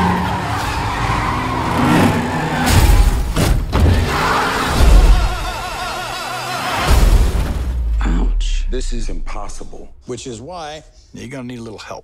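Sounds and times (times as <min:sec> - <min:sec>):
car engines revving: 0:00.0 - 0:08.1.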